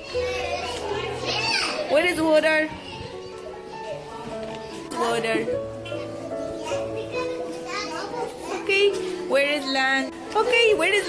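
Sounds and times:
children's voices: 0:00.0 - 0:04.9, 0:05.7 - 0:11.0
background music with held notes: 0:00.0 - 0:11.0.

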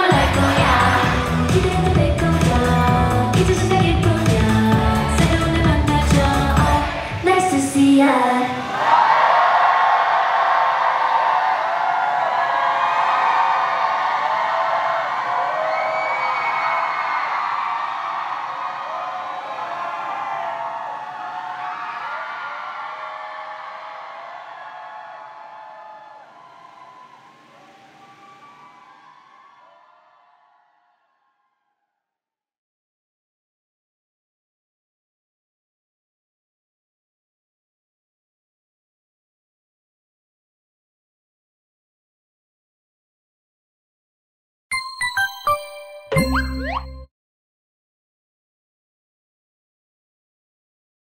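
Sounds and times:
crowd cheering and screaming: 0:00.0 - 0:03.4, 0:08.3 - 0:31.2.

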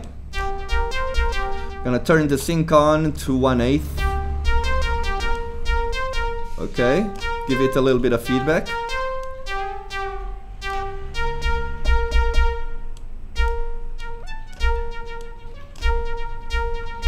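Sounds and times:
low thuds: 0:00.0 - 0:08.1, 0:09.7 - 0:17.0
synthesizer sawtooth lead with echo: 0:00.0 - 0:17.0.

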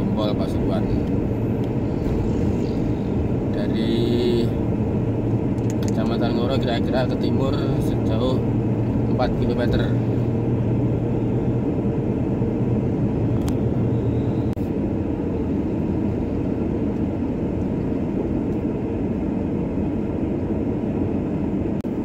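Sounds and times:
car engine and road noise: 0:00.0 - 0:22.0.

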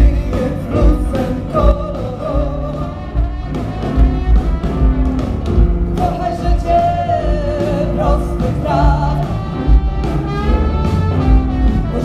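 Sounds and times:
person singing: 0:00.0 - 0:03.6, 0:06.0 - 0:09.8
live blues band: 0:00.0 - 0:12.0.

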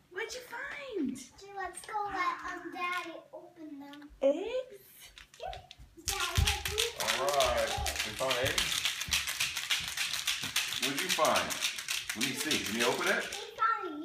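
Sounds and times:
young children's voices: 0:01.4 - 0:04.2, 0:05.4 - 0:08.0, 0:13.0 - 0:14.0
small clicks and taps: 0:05.1 - 0:13.4.

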